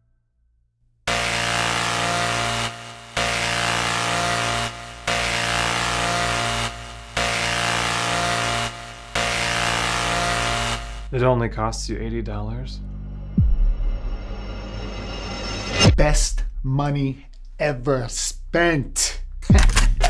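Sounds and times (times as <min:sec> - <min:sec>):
harsh distorted buzzing chord: 0:01.1 - 0:11.3.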